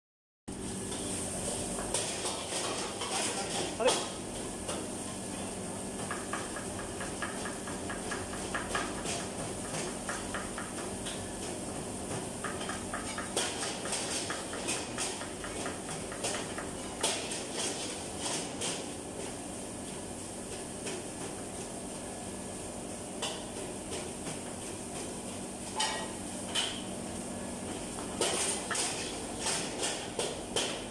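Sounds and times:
kitchen hum: 0.5s - 30.9s.

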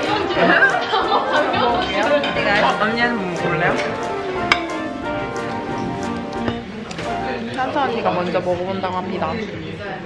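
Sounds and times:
background music with light beat: 0.0s - 8.6s
voices talking over each other: 0.0s - 9.2s.

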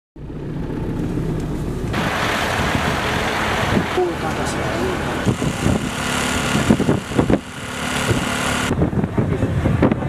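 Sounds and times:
low engine rumble: 0.2s - 10.0s
even rushing noise: 1.0s - 9.8s.

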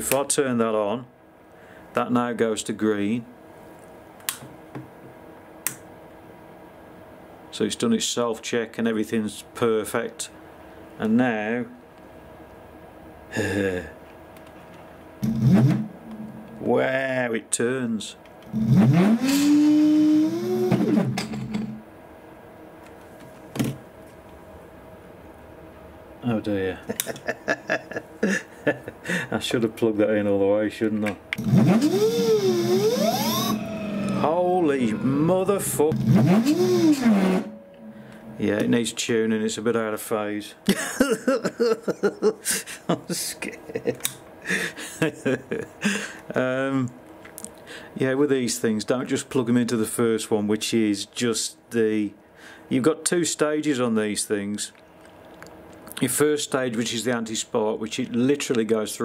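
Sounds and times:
switch clicks: 5.6s - 5.8s
electric motor whine: 15.2s - 16.6s, 18.5s - 21.8s, 31.4s - 38.1s.

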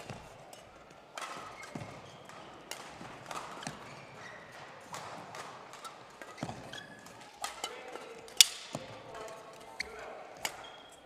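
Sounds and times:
rackets striking shuttlecock: 0.0s - 9.6s, 10.4s - 10.8s
shoes squeaking on court floor: 0.0s - 11.0s.

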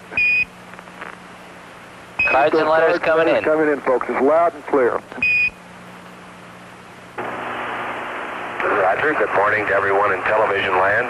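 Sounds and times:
radio hiss: 2.2s - 5.1s, 7.2s - 11.0s
man speaking over radio: 2.3s - 5.1s, 8.6s - 11.0s.

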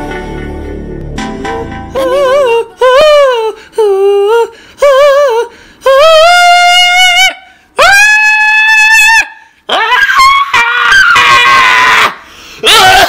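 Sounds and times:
person singing high strained notes: 1.9s - 8.6s.

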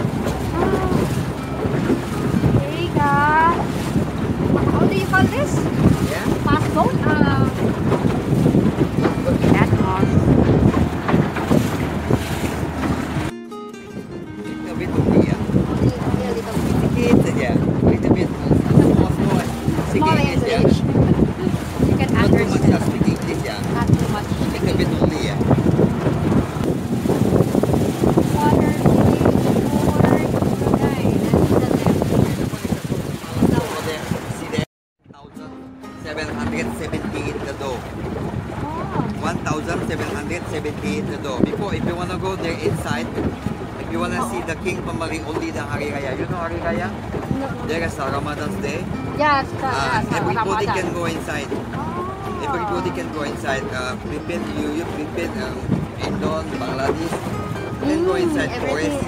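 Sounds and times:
wind buffeting microphone: 0.0s - 13.3s, 13.9s - 34.7s, 36.0s - 59.0s
outboard motor running: 0.0s - 34.6s, 35.9s - 59.0s
water rushing past hull: 0.0s - 34.7s, 35.3s - 59.0s
boat engine rumble: 0.0s - 59.0s
voices talking: 0.3s - 3.8s, 4.6s - 7.7s, 9.0s - 10.3s, 14.4s - 25.4s, 28.2s - 59.0s.

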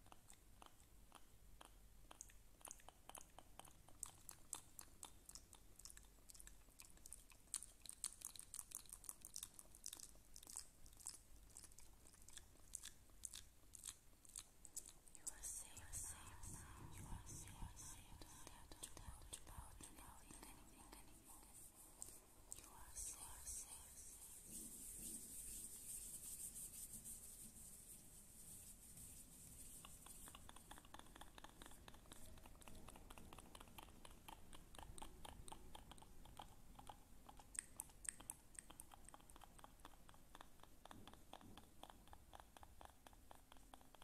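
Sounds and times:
wet mouth clicks: 0.0s - 24.2s, 29.8s - 44.0s
person whispering: 15.1s - 24.5s.

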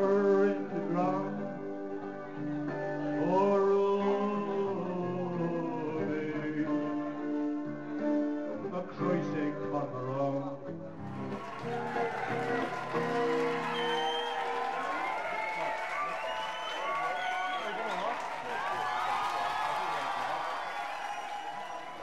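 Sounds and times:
crowd voices: 10.9s - 22.0s
people clapping: 11.0s - 22.0s.

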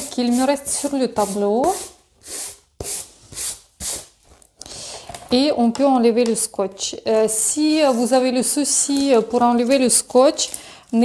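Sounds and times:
hand brushing paper: 0.0s - 4.1s, 7.7s - 8.3s.

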